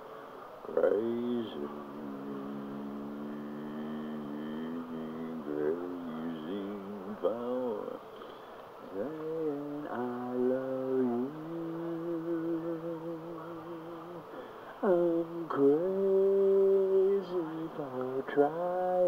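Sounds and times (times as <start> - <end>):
person humming a slow tune: 0.7 - 8.3, 8.9 - 19.0.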